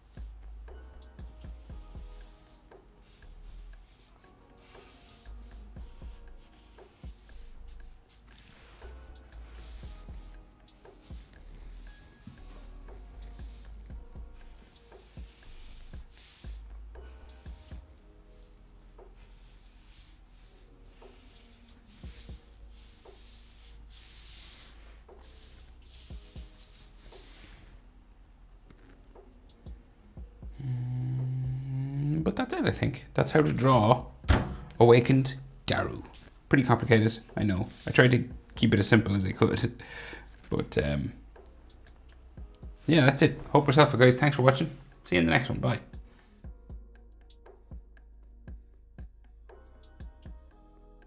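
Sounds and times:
soft background music: 0.0 - 51.0
marker rubbing across paper: 1.6 - 27.8, 35.1 - 39.1, 42.6 - 45.3.

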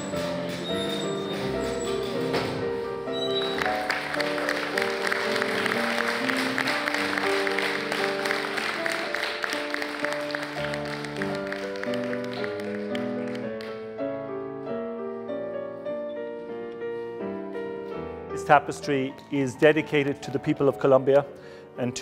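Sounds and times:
background music with held notes: 0.0 - 22.0
crowd applauding: 3.2 - 13.8.

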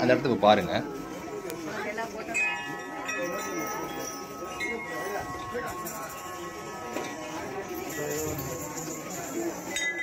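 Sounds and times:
metal chimes ringing: 1.8 - 10.0.

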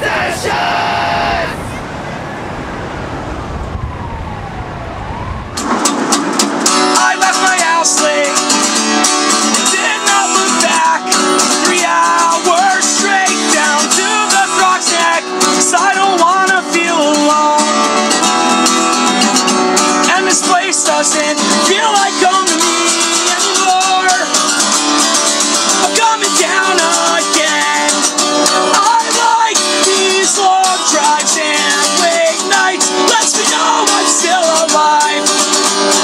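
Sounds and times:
low rumbling with whine: 1.1 - 6.7
acoustic guitar strumming: 5.6 - 36.0
man singing: 6.9 - 8.7, 9.4 - 17.8, 20.0 - 24.8, 25.6 - 35.6.

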